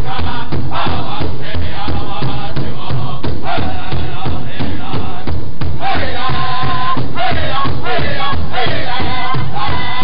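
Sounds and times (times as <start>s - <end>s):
large drum steady beat: 0.0s - 10.0s
men singing in high phrases: 0.0s - 10.0s.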